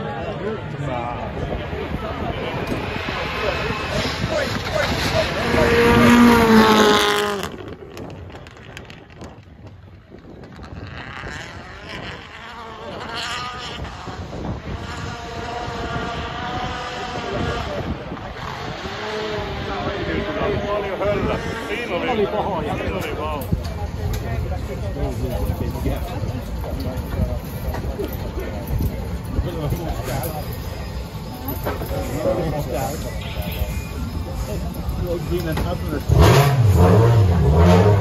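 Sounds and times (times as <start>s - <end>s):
distant engine noise: 0.0s - 38.0s
spectators talking: 0.0s - 38.0s
rally car engine passing: 1.1s - 8.9s, 10.6s - 22.6s, 34.2s - 38.0s.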